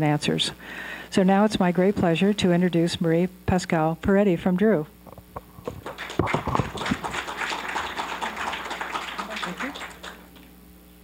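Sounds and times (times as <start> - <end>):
audience applauding: 5.6 - 10.5.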